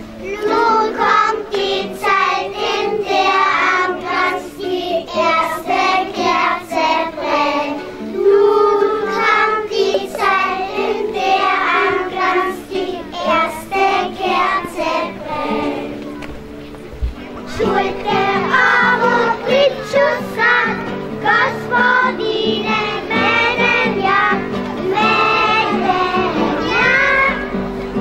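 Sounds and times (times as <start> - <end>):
children singing: 0.0 - 16.3, 17.4 - 28.0.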